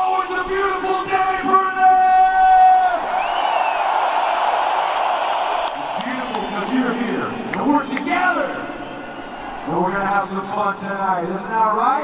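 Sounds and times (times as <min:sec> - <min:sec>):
stadium crowd cheering: 0:00.0 - 0:11.8.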